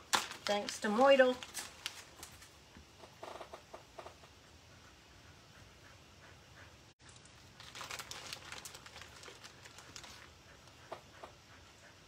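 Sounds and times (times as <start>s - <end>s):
paper crinkling and rustling: 0.0s - 2.5s, 7.0s - 10.3s.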